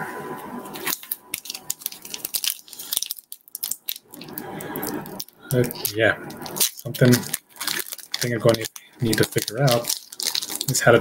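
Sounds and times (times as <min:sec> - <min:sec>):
cards and packaging crackling: 0:00.8 - 0:11.0.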